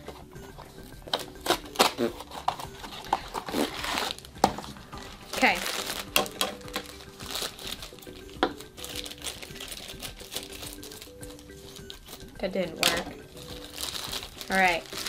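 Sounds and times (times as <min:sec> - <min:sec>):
scissors cutting foil bag: 0:01.1 - 0:04.3, 0:05.2 - 0:15.0
foil bag crinkling: 0:01.2 - 0:04.4, 0:05.1 - 0:15.0.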